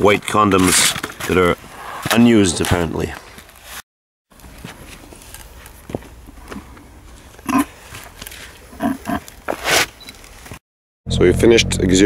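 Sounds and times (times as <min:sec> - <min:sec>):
gloved hand scraping gravelly soil: 0:07.1 - 0:10.4.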